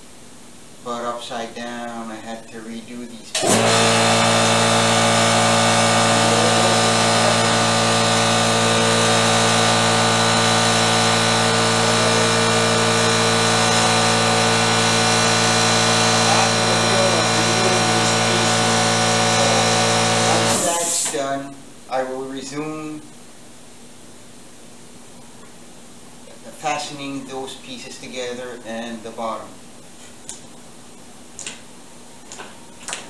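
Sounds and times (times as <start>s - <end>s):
air compressor running: 3.3s - 21.5s.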